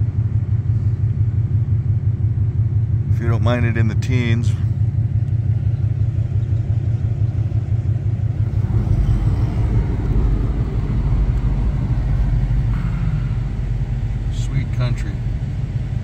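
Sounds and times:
vehicle driving on snowy road: 0.0s - 16.0s.

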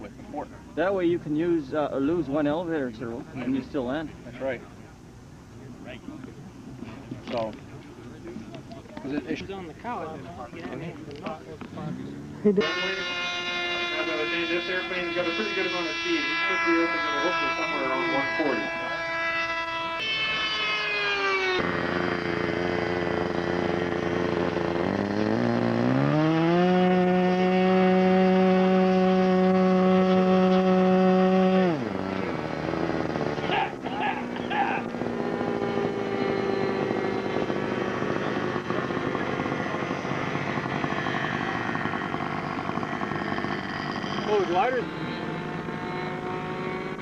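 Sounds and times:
faint steady engine note: 0.0s - 47.0s
model airplane engine passing overhead: 11.8s - 47.0s
model airplane engine revving: 11.8s - 47.0s.

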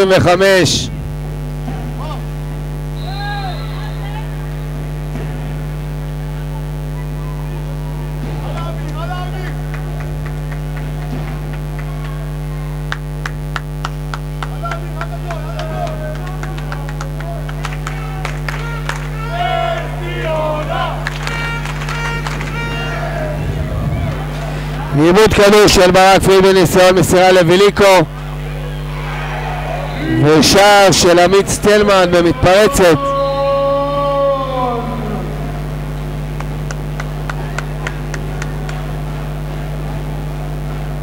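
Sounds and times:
players calling: 0.0s - 40.6s
electrical mains hum: 0.0s - 41.0s.

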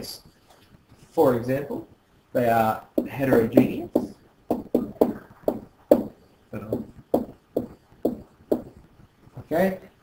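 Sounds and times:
stylus tapping on tablet: 3.0s - 8.9s.

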